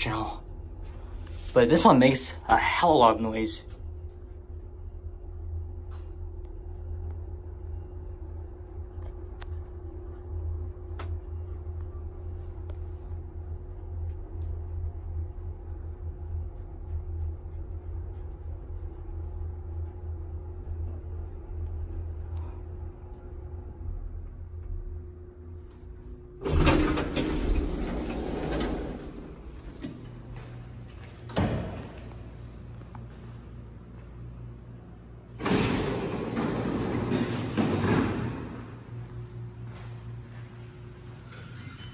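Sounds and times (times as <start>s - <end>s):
elevator machinery humming: 0.0s - 41.9s
elevator doors sliding: 26.3s - 32.8s, 35.3s - 39.8s.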